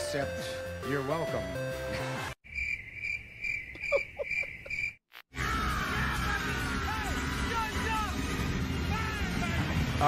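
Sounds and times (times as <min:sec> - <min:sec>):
crickets chirping: 0:02.4 - 0:05.0.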